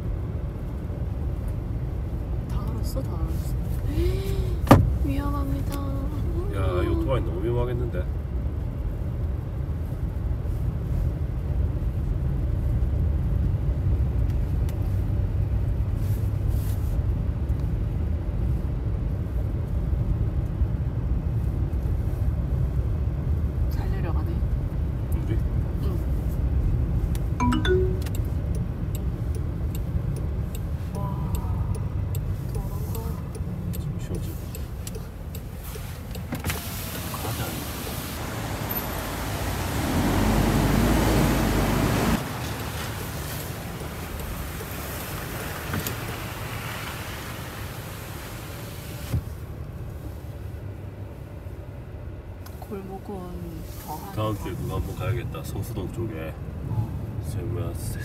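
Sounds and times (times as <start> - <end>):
car cabin tyre and engine rumble: 0.0 - 58.0.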